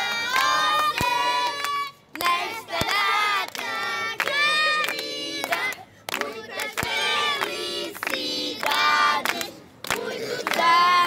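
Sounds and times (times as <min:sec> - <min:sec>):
children clapping hands: 0:00.0 - 0:11.0.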